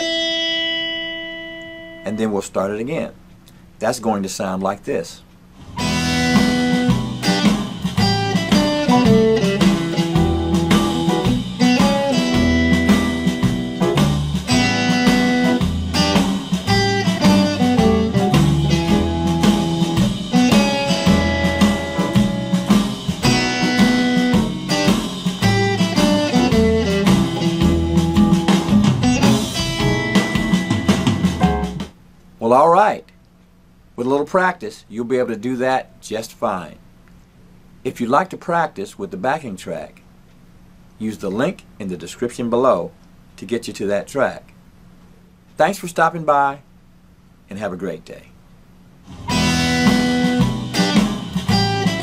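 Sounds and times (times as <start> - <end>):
electric guitar blues riff: 0.0 - 2.4, 5.6 - 31.9, 49.1 - 52.0
swing blues backing track: 5.6 - 31.9, 49.1 - 52.0.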